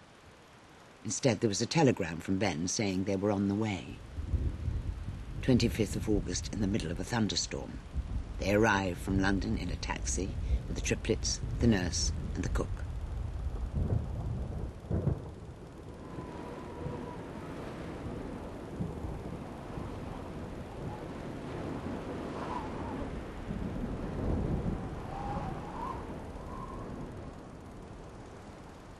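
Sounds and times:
steady hiss of rain: 0.0 - 28.9
deep rolling thunder: 7.8 - 28.8.

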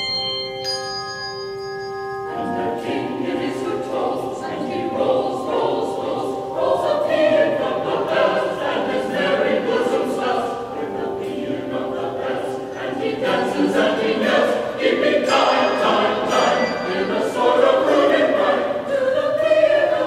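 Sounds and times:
handbells ringing: 0.0 - 2.8, 15.2 - 18.3
mixed choir singing: 2.3 - 20.0.

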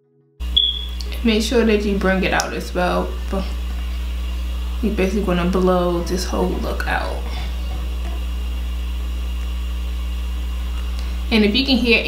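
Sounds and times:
steady low hum: 0.4 - 12.0.

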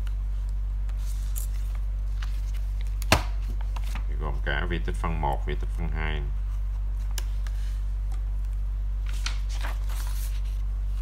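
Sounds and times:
low electrical hum: 0.0 - 11.0
paper sheets handled: 0.8 - 4.5, 6.4 - 11.0.

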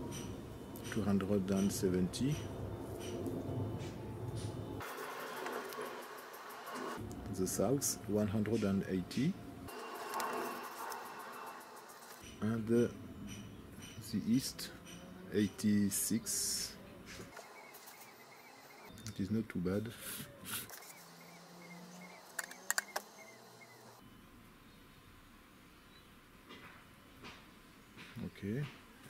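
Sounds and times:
steady low hum: 0.0 - 26.0
outdoor background hiss: 0.0 - 29.0
faint bird chirps: 16.7 - 25.2.

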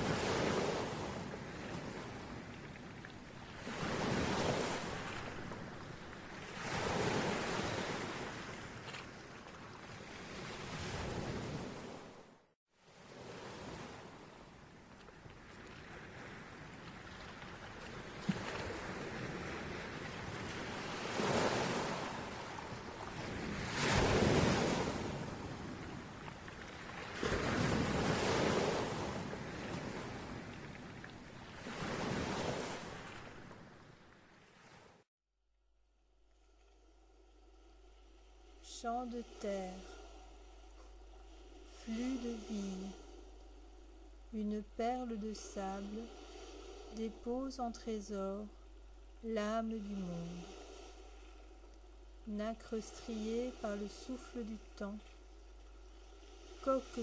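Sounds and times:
sea waves washing in and out: 0.0 - 35.1, 36.2 - 57.0.

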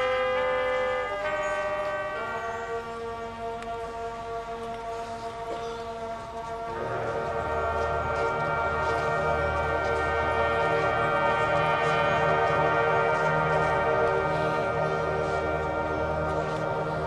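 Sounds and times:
low percussion: 0.0 - 17.0
marching band playing chords: 0.0 - 17.0.

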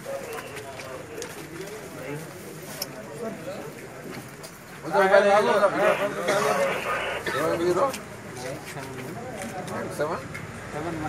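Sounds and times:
men talking in background: 0.0 - 11.0.

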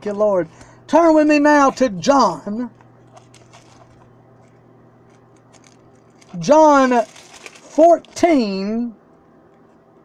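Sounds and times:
low electrical hum: 0.0 - 10.0
pages being turned: 3.1 - 8.4.

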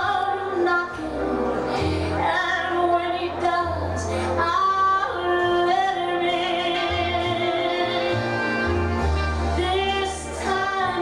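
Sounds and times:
woman singing: 0.0 - 8.7, 9.6 - 11.0
low held bass notes: 0.0 - 11.0
instrumental accompaniment: 0.1 - 11.0.

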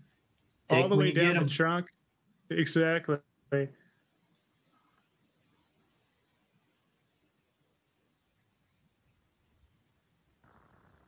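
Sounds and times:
faint hiss: 0.0 - 11.0.

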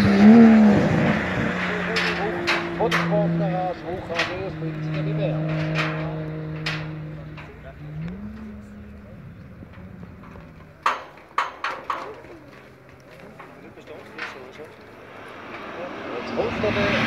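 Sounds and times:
distant race car engine: 0.0 - 17.0.

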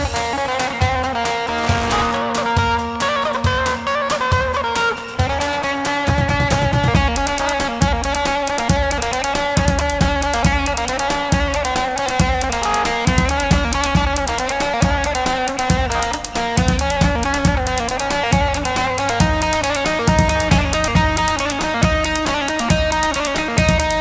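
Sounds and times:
plucked-string melody: 0.0 - 24.0
thumping drum beat: 0.0 - 24.0.

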